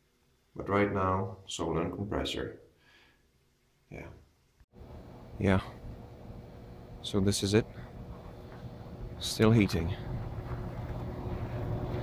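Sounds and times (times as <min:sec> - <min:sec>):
fan whooshing: 0:04.8 - 0:12.0
heat pump compressor hum: 0:04.8 - 0:12.0.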